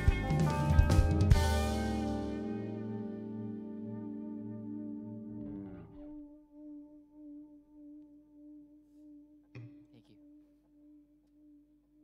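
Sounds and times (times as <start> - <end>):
guitar string pluck: 0.0 - 6.4
band chord ringing out: 0.0 - 6.7
wavering electric guitar note: 0.0 - 11.6.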